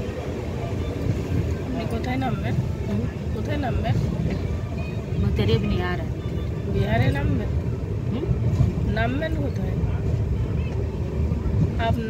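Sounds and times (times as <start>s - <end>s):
people talking: 0.0s - 12.0s
train rumbling and clattering: 0.0s - 12.0s.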